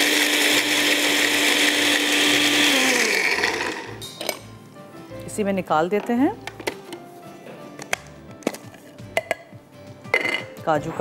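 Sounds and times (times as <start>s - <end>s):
soft background music: 3.9s - 11.0s
grinder jar clicks and knocks: 6.0s - 7.0s, 7.8s - 9.5s.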